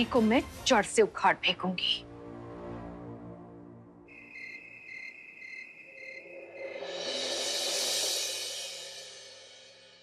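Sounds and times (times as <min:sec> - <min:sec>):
cricket chirping: 0:04.1 - 0:07.4.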